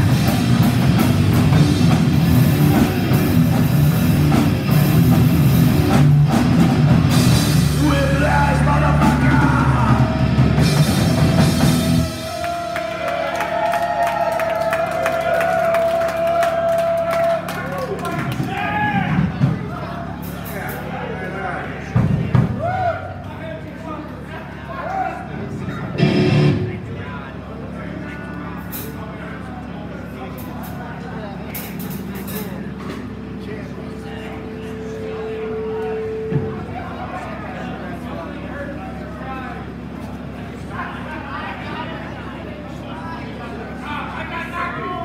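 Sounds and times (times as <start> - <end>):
metal band playing live: 0.0 - 12.8, 25.9 - 26.9
crowd cheering: 0.0 - 28.5
voices and chatter: 0.0 - 45.0
electric guitar ringing: 25.9 - 26.9, 33.0 - 37.4
amplifier hum: 26.0 - 26.9.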